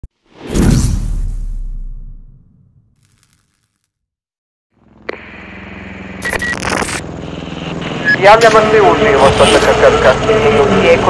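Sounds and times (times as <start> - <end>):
deep low boom: 0.5 - 2.9.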